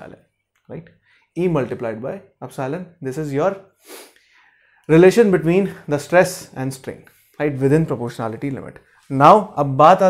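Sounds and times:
man speaking: 0:00.0 - 0:03.7, 0:04.9 - 0:10.0
sharp in-breath: 0:03.8 - 0:04.8.

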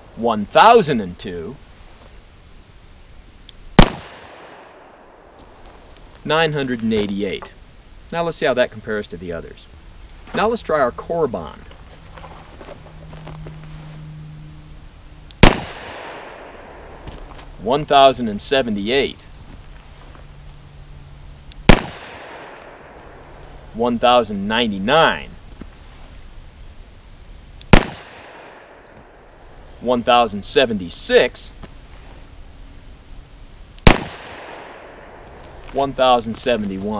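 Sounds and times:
revolver gunshot with echo: 0:03.8 - 0:05.1, 0:15.4 - 0:17.0, 0:21.7 - 0:23.2, 0:27.7 - 0:28.8, 0:33.8 - 0:35.2.

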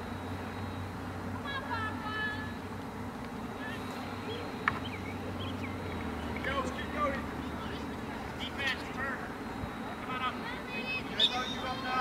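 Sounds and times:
background hiss: 0:00.0 - 0:12.0
distant people shouting: 0:03.5 - 0:12.0.

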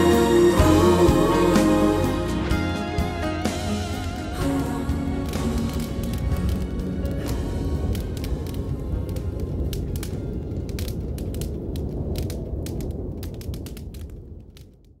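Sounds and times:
fire crackling and popping: 0:00.0 - 0:15.0
low rumble: 0:00.0 - 0:15.0.

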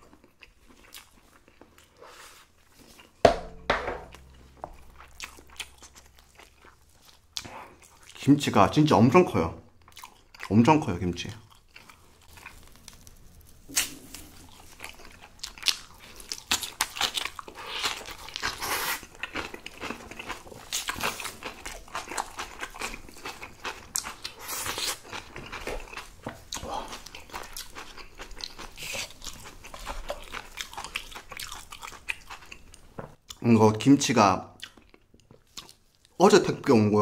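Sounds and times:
kimchi tearing with wet crackles: 0:00.0 - 0:03.2, 0:04.1 - 0:33.5, 0:34.5 - 0:37.0.

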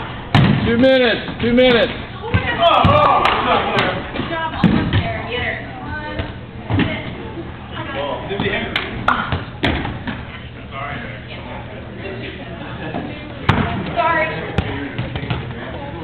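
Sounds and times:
players shouting: 0:02.4 - 0:04.0.

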